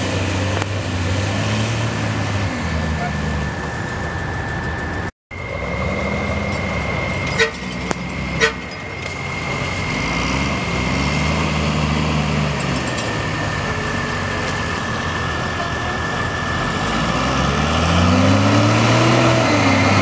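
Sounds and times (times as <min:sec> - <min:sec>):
truck engine running under load: 0:00.0 - 0:20.0
short sharp horn toots: 0:07.2 - 0:08.9.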